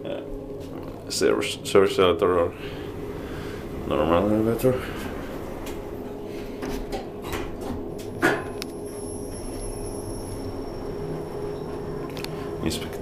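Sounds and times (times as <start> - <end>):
high-pitched elevator whine: 0.0 - 13.0
low steady hum: 0.0 - 13.0
elevator doors closing with clicks: 2.6 - 12.5.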